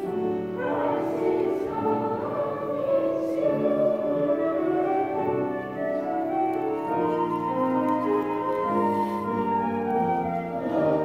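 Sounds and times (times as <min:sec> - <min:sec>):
children's choir singing: 0:00.0 - 0:11.0
piano accompaniment: 0:00.0 - 0:11.0.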